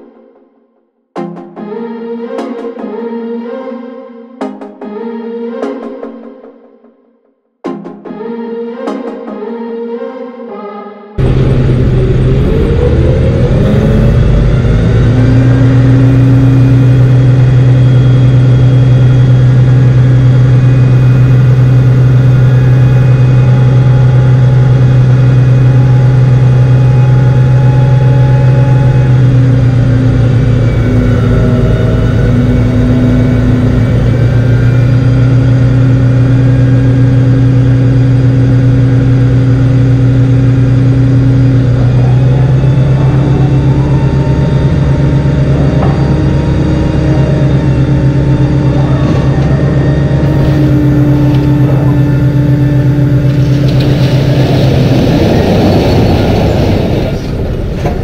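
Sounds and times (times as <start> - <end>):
diesel truck engine revving: 11.2 - 58.0.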